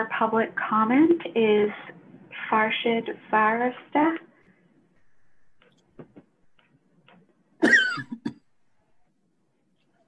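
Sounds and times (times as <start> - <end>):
person coughing: 7.6 - 8.5.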